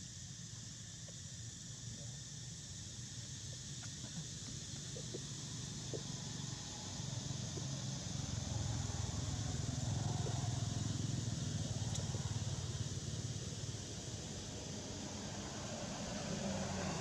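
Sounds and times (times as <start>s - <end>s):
steady high hiss: 0.0s - 17.0s
faint small clicks: 11.9s - 12.1s.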